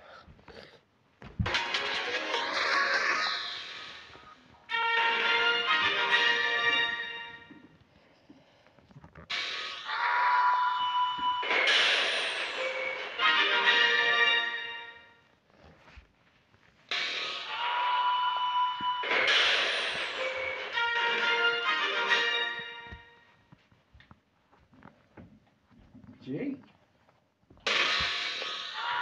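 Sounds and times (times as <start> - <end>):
television logo music: 1.4 - 7.5, 9.3 - 15.1, 16.9 - 23.0, 27.7 - 29.0.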